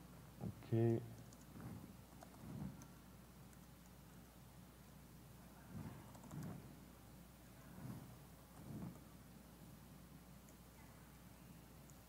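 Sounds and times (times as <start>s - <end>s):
laptop keyboard typing: 1.2s - 4.0s, 5.7s - 6.7s.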